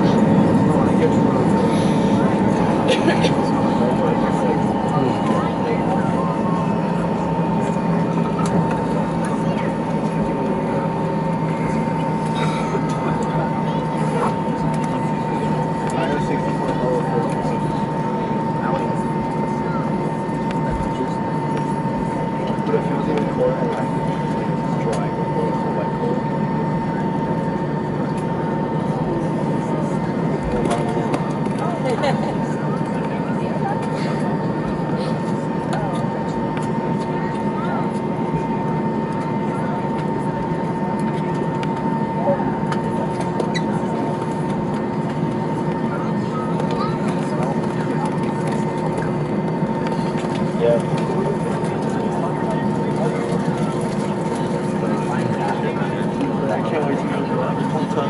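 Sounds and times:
jet engines idling: 0:00.0 - 0:58.0
passenger chatter: 0:00.0 - 0:58.0.

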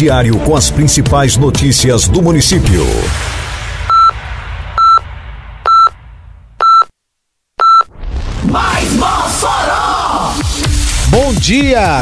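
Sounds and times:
low rumble: 0:02.2 - 0:06.7
electronic countdown beeps: 0:03.9 - 0:04.2, 0:04.8 - 0:05.0, 0:05.7 - 0:06.0, 0:06.6 - 0:06.9, 0:07.6 - 0:07.9.

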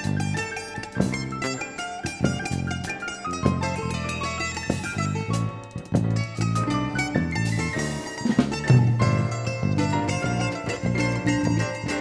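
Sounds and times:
live instrumental band music: 0:00.0 - 0:12.0.

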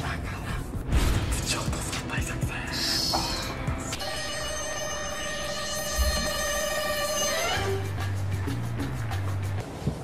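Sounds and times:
sustained electronic chord: 0:03.8 - 0:08.4.

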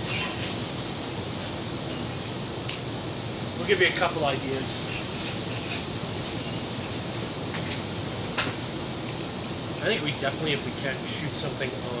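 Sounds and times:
air conditioning hum: 0:00.0 - 0:12.0.

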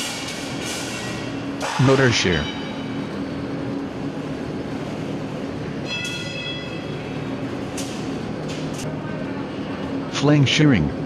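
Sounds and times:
rolling mill machinery rumble: 0:00.0 - 0:11.0
high metallic ringing: 0:01.8 - 0:03.4, 0:05.7 - 0:07.4.

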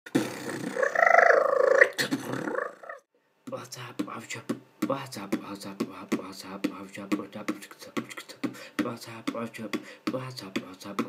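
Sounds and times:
beatboxing voice: 0:00.1 - 0:11.0.

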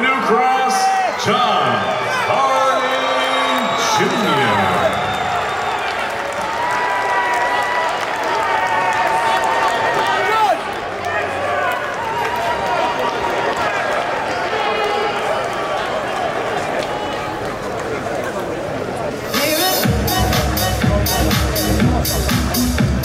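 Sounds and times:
crowd shouting and cheering: 0:00.0 - 0:23.0.

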